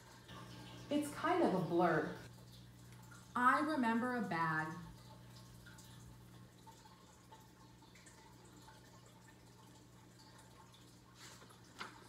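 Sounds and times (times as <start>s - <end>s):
book page turning: 11.2s - 12.0s.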